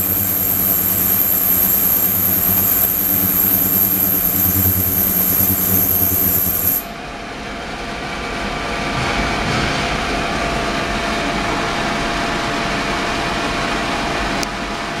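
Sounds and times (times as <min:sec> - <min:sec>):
ultrasonic cleaner hiss and hum: 0:00.0 - 0:07.2.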